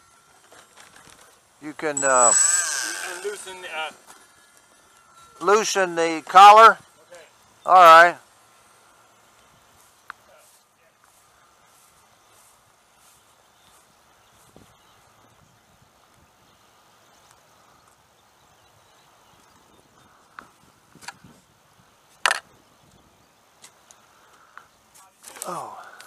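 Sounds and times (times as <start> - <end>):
footsteps on grass: 9.4 - 15.3.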